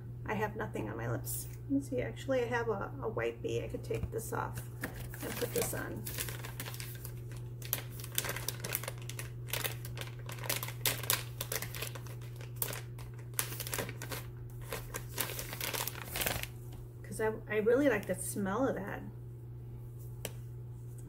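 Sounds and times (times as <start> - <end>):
steady low hum: 0.0 - 21.0
crinkly packaging crackling: 4.6 - 16.8.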